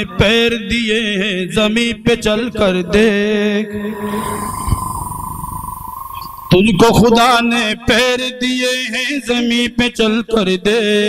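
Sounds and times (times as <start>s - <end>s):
steady high tone: 3.0s - 7.4s.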